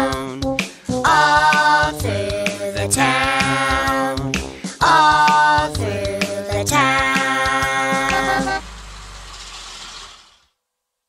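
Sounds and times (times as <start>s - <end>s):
cartoon bus engine: 4.8s - 10.6s.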